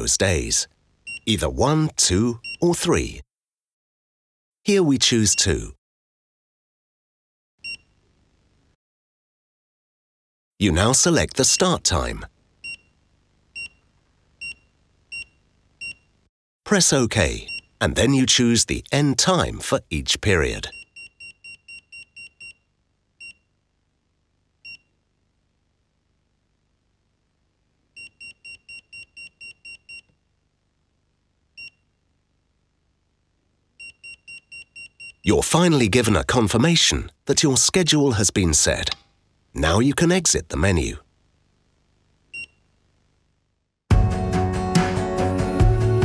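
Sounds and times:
thermostat key beeps: 14.4s - 16.1s, 33.8s - 35.2s.

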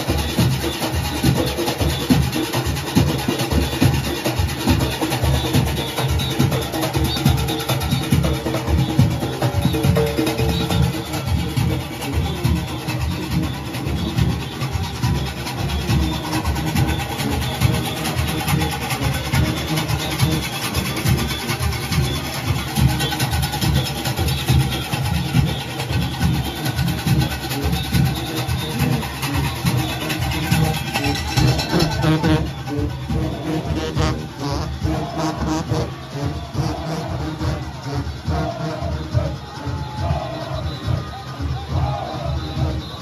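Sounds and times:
cowbells: 0.0s - 43.0s
goatskin drumming: 0.0s - 43.0s.

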